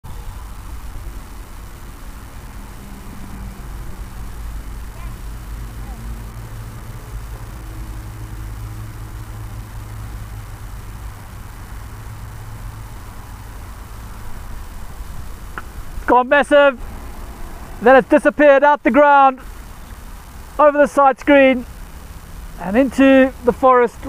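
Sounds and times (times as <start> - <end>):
distant indistinct voices: 0.0 - 9.0
steady low rumble: 0.0 - 24.0.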